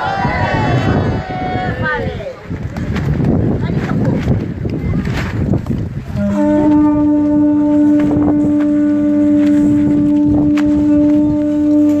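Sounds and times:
conch shell trumpets blowing: 6.1s - 12.0s.

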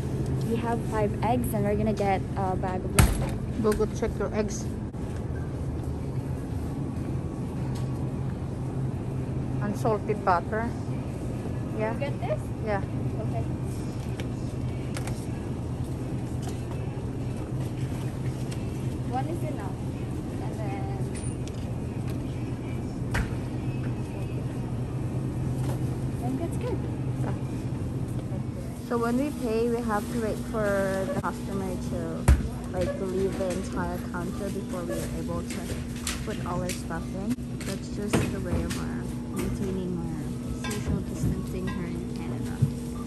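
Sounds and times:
low hum of refrigerated cases: 0.0s - 43.0s.

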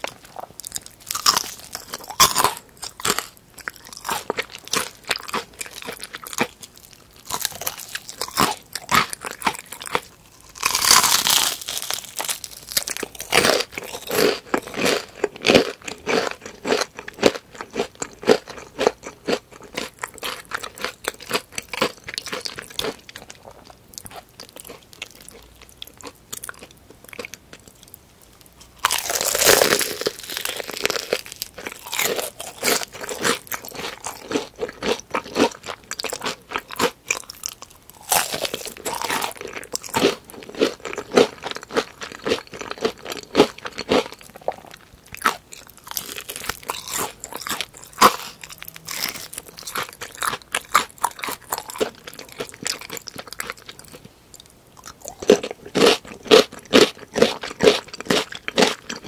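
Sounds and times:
crunchy chewing of fried chicken: 0.0s - 59.0s.

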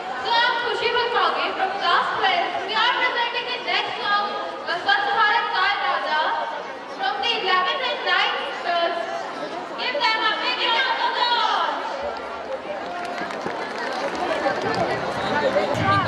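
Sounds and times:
audience chatter: 0.0s - 16.0s.

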